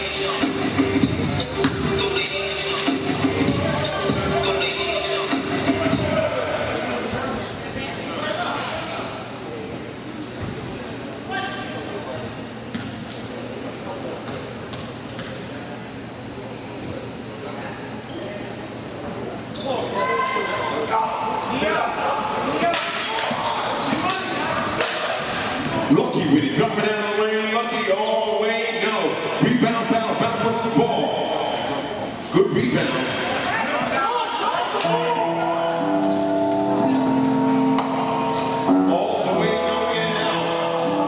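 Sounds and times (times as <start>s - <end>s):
voices echoing in a hall: 0.0s - 41.0s.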